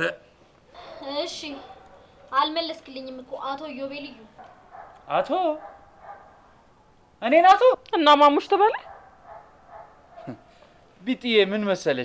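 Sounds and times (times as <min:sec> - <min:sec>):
faint dog calls: 0:08.7 - 0:10.9.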